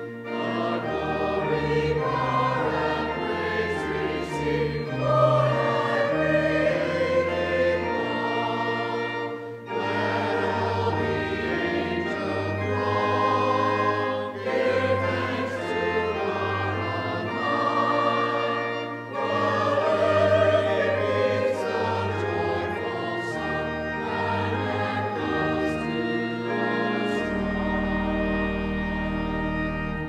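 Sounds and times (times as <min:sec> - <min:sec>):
choir and congregation singing hymn: 0:00.0 - 0:29.8
organ: 0:00.0 - 0:30.0.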